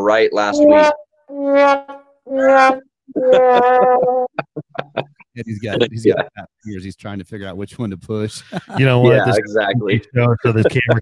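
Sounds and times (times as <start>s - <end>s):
brass horn notes: 0.5s - 4.3s.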